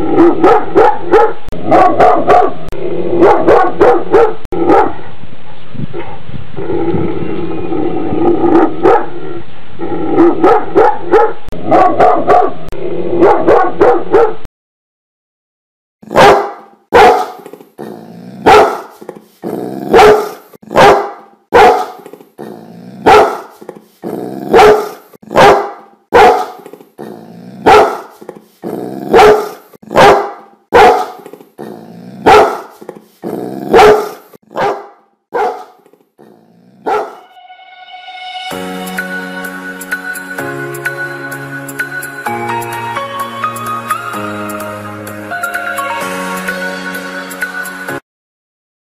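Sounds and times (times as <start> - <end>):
large dogs barking deeply: 0.0 - 5.2, 8.3 - 9.2, 10.2 - 12.6, 16.1 - 17.4, 18.4 - 22.0, 23.0 - 23.6, 24.4 - 35.8, 36.8 - 37.2.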